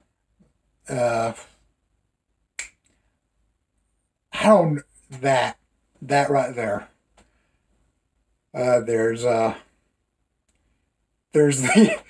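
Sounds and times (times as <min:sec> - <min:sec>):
finger snap: 0:02.6 - 0:03.0.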